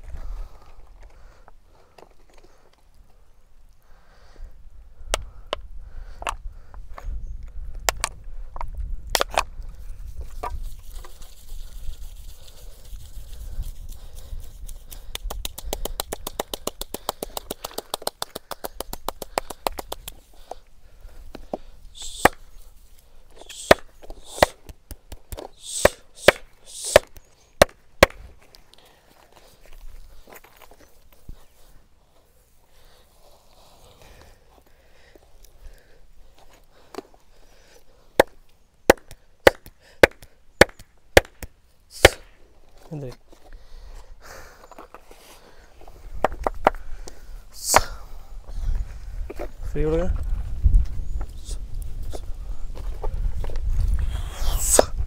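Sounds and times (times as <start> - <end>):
fast light hand taps: 14.9 - 20.2
sharp hand slaps: 15.1 - 20.2, 22.0 - 22.4, 23.5 - 28.2, 38.9 - 42.3, 47.6 - 48.0.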